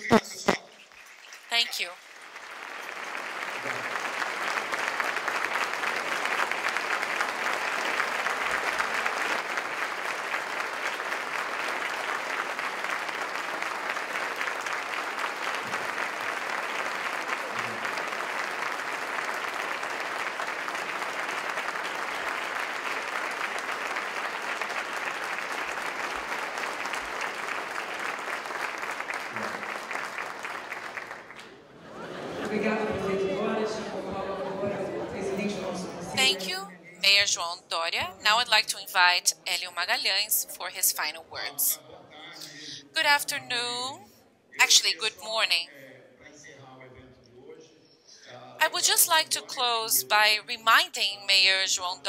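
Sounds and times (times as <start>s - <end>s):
audience applause: 0.0s - 34.7s.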